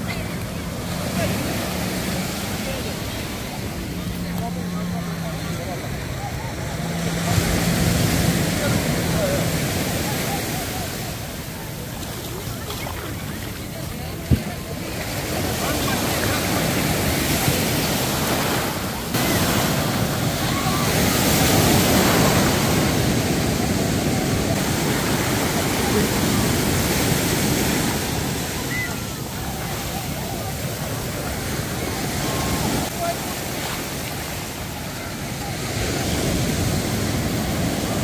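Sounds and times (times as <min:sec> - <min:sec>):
surf breaking on sand: 0:00.0 - 0:38.0.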